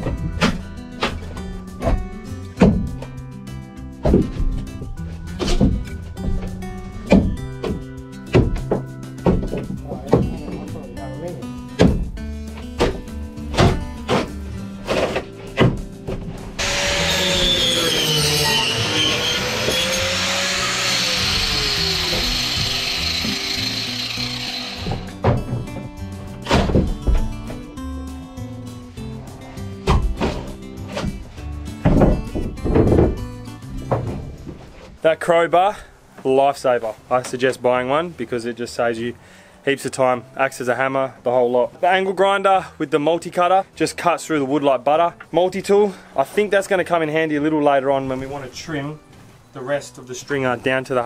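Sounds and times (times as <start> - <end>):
background music: 0.0 - 51.0
angle grinder cutting wood: 16.6 - 25.2.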